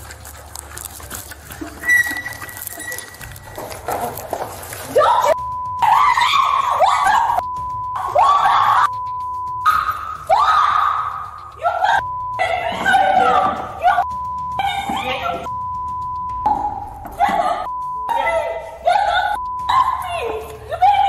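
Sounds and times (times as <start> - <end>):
woman screaming and cursing: 4.9 - 7.4, 8.0 - 9.0, 9.6 - 15.5, 17.1 - 21.0
censor bleeps: 5.4 - 10.3, 12.0 - 20.7.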